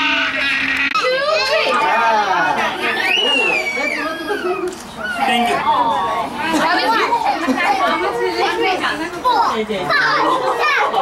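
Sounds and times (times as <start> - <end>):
overlapping party chatter: 0.0 - 11.0.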